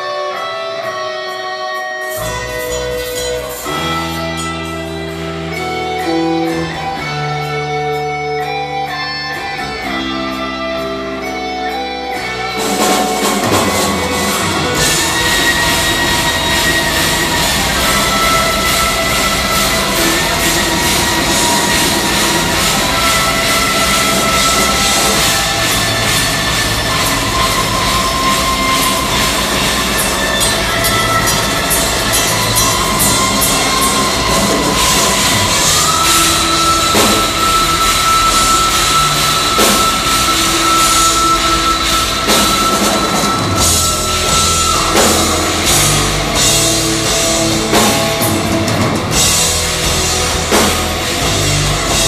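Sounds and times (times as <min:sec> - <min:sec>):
bass: 0:00.0 - 0:52.0
distorted electric guitars: 0:00.0 - 0:52.0
drums: 0:00.0 - 0:52.0.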